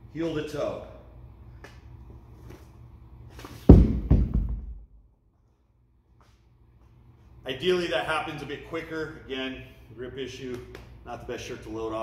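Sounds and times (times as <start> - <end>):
heavy stone thudding on floor: 3.7 - 5.0.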